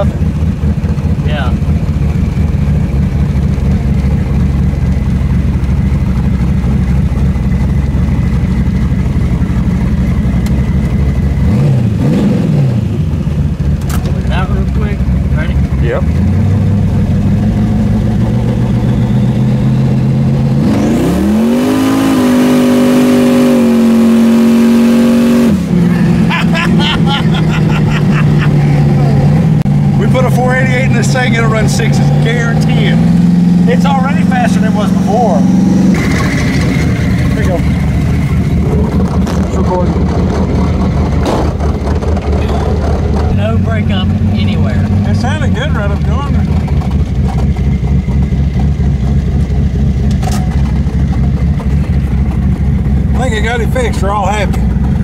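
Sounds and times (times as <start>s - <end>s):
pickup engine revving: 0.0s - 55.0s.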